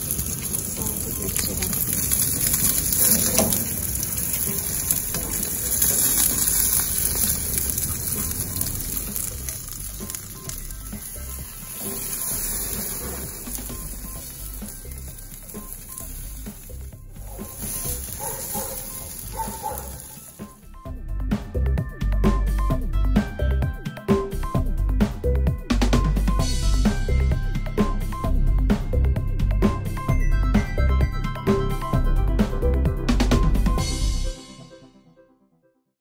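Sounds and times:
fish sizzling on a grill: 0:00.0 - 0:20.7
faint background music: 0:00.0 - 0:34.8.

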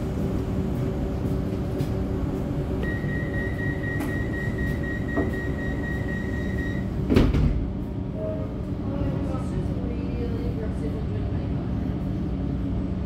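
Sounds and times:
train carriage hum: 0:00.0 - 0:13.0
high warning tone: 0:02.8 - 0:07.0
sliding doors shutting with thump: 0:07.0 - 0:07.7.

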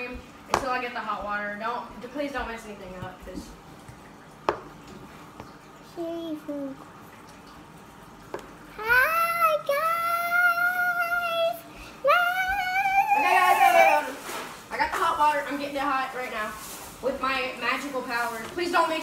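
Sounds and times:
girl singing high held notes: 0:08.8 - 0:14.0.

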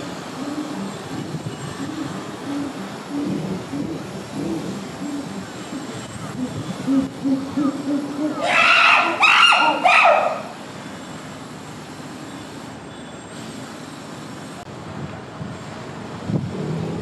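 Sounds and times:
steady background noise: 0:00.0 - 0:17.0
chimpanzee high calls: 0:06.4 - 0:10.6.

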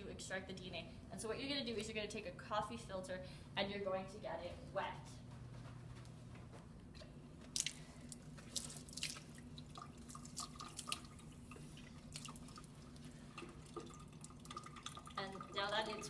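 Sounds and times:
steady low hum: 0:00.0 - 0:16.0
water splashing from faucet: 0:08.4 - 0:16.0.

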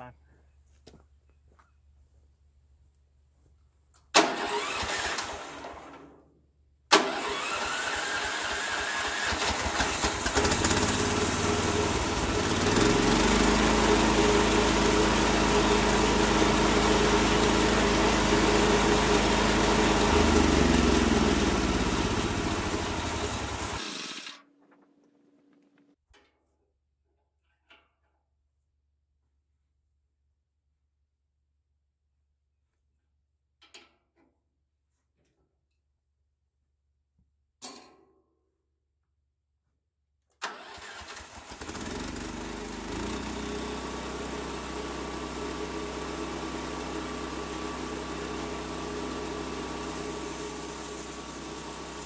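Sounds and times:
electric starter cranking: 0:04.2 - 0:06.1, 0:06.9 - 0:13.8, 0:17.4 - 0:24.5, 0:40.4 - 0:44.2
gasoline engine running: 0:07.0 - 0:24.6.

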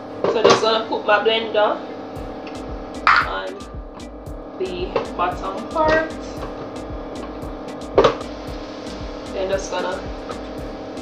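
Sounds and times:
background music with beat: 0:02.1 - 0:11.0.

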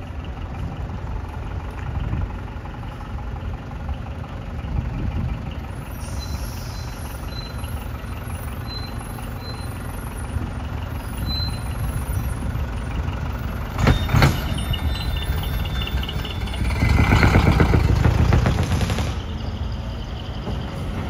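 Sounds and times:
truck engines rumbling: 0:00.0 - 0:21.0.

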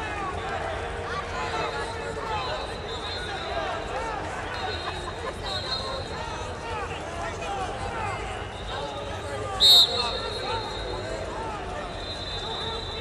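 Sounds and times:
babble of many voices: 0:00.0 - 0:13.0
referee whistle blast: 0:04.5 - 0:06.1, 0:09.5 - 0:11.1, 0:11.9 - 0:13.0.

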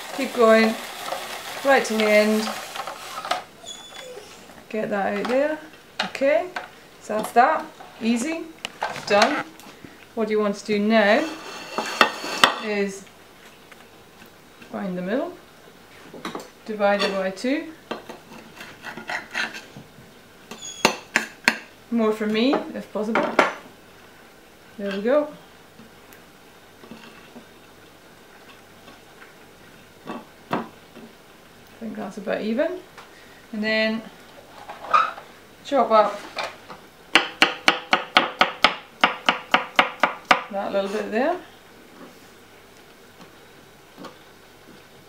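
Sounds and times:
knife scraping vegetable noodles: 0:11.1 - 0:12.6, 0:18.4 - 0:19.7
knife chopping on wooden board: 0:37.2 - 0:40.5.

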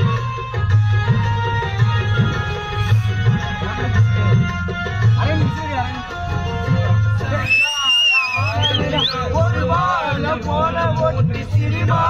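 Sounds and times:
loud song with drum beat: 0:00.0 - 0:12.0.

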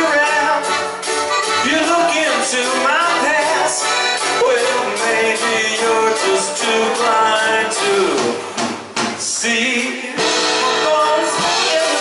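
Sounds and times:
man singing: 0:00.0 - 0:08.6, 0:09.2 - 0:12.0
guitars playing rock music: 0:00.0 - 0:09.2, 0:10.2 - 0:12.0.

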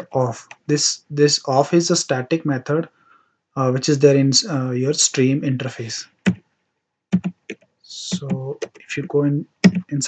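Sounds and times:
computer keyboard keystrokes: 0:07.2 - 0:08.9, 0:09.6 - 0:09.9.

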